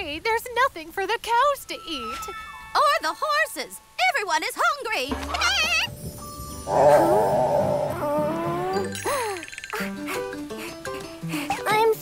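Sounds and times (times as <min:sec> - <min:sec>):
wavering cartoon growl effect: 0:06.7 - 0:08.8.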